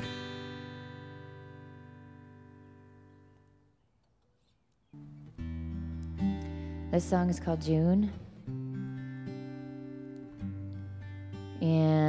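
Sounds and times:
acoustic guitar chord ringing: 0.0s - 3.6s, 5.0s - 12.0s.

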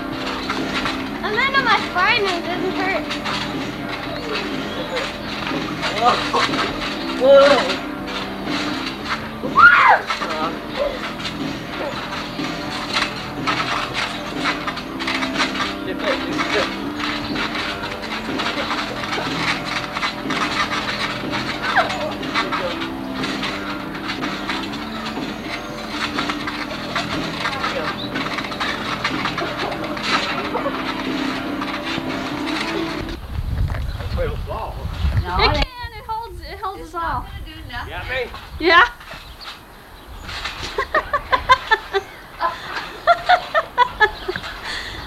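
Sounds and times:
music playing: 0.0s - 33.2s
scattered voices: 0.0s - 33.2s, 34.0s - 39.0s
trampoline bounce thumps: 0.0s - 34.0s
person squealing: 9.6s - 10.0s.

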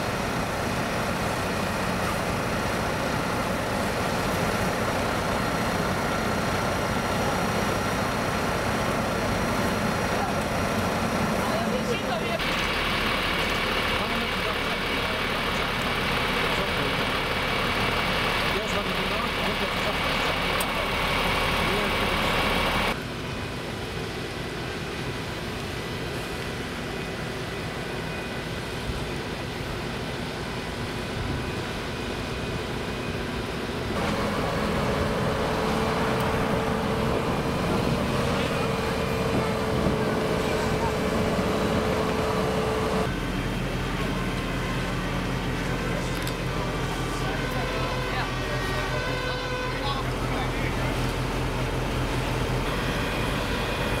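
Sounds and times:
water spraying from hoses: 0.0s - 23.0s
fire engine pump running: 0.0s - 54.0s.

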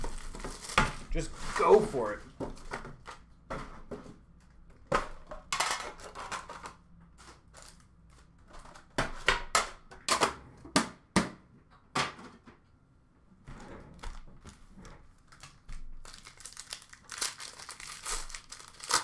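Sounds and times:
foil packs rustling: 0.0s - 3.2s, 14.0s - 19.0s.

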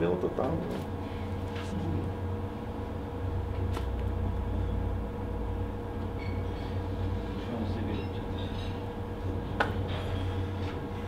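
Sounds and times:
faint constant hum: 0.0s - 11.0s
low room rumble: 0.0s - 11.0s.

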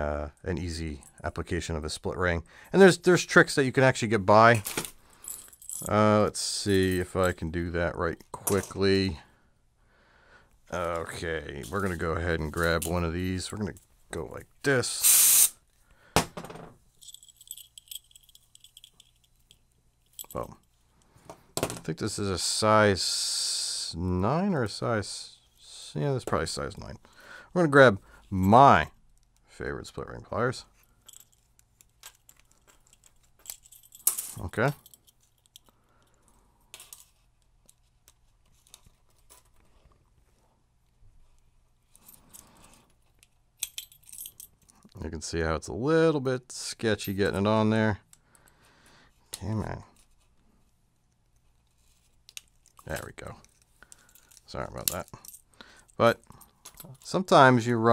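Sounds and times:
metal split rings clinking: 16.9s - 20.8s, 30.8s - 37.9s, 41.9s - 44.8s, 52.2s - 57.2s.

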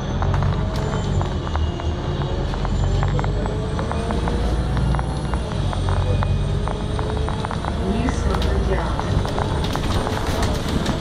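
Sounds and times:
bus engine drone: 0.0s - 11.0s
rattles and clicks: 0.2s - 11.0s.

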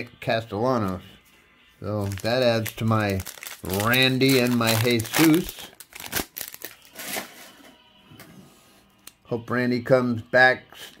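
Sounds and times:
cards rustling and shuffling: 2.0s - 7.3s.

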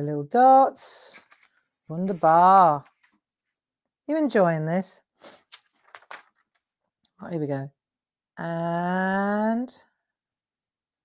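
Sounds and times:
paper rustling: 1.1s - 3.3s, 5.2s - 6.8s.

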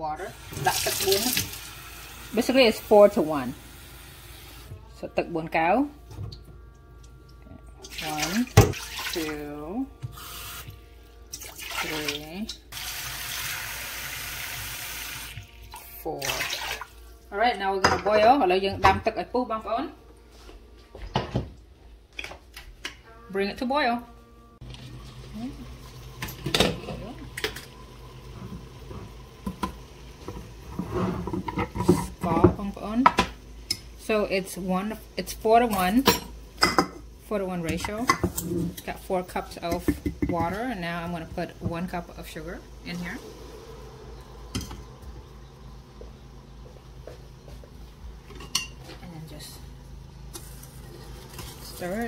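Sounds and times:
water heating on stovetop hum: 0.0s - 23.0s, 24.6s - 52.0s.

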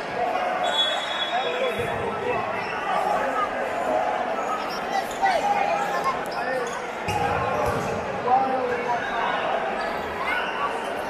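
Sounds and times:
sounds of play on court: 0.0s - 11.0s
voices echoing in a gymnasium: 0.0s - 11.0s.

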